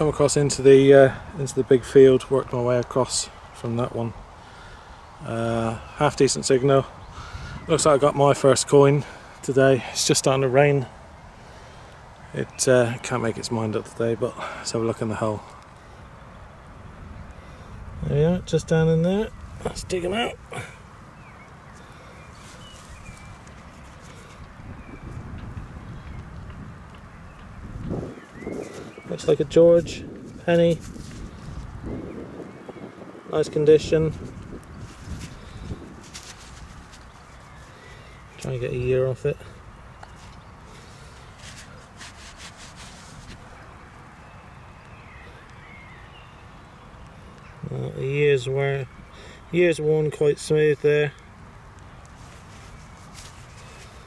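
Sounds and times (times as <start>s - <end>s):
wind rumble on microphone: 6.4s - 8.7s, 16.4s - 20.2s, 22.4s - 37.7s
faint high bird calls: 20.5s - 29.4s, 34.3s - 48.1s
hands scraping through soil: 22.3s - 24.4s, 30.2s - 31.8s, 34.0s - 37.8s, 40.1s - 43.6s, 52.1s - 54.0s
faint bird chirps: 43.5s - 48.1s.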